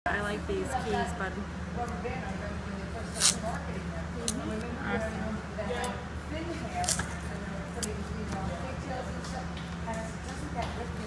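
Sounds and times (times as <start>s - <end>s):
faint talking voices: 0.1s - 11.0s
masking tape ripping: 3.0s - 3.6s.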